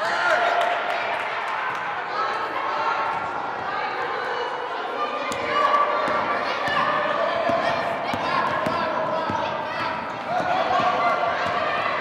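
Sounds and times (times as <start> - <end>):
children's voices echoing: 1.9 - 12.0.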